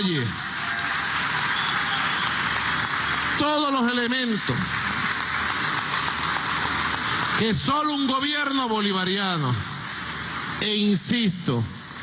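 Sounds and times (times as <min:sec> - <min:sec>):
large audience applauding: 0:00.0 - 0:10.8.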